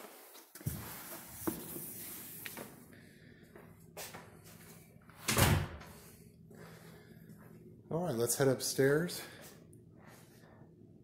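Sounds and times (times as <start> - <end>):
door shutting with a thud: 5.2 - 5.9.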